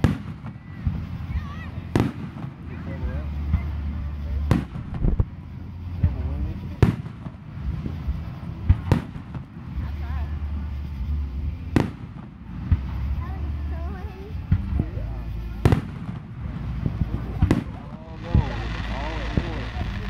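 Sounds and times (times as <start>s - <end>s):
small firework pops: 0.0s - 1.3s, 1.9s - 2.8s, 4.4s - 9.6s, 11.7s - 13.2s, 15.6s - 20.0s
fireworks bangs: 0.0s - 11.0s, 11.7s - 13.2s, 15.6s - 20.0s.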